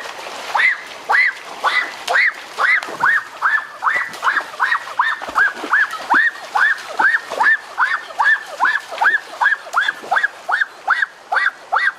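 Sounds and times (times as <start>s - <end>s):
wading through shallow stream: 0.0s - 11.9s.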